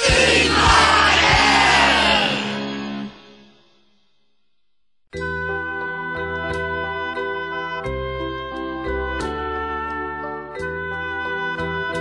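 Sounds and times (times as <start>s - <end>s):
drum hit: 0.0s - 2.1s
rock band chord: 0.0s - 2.7s.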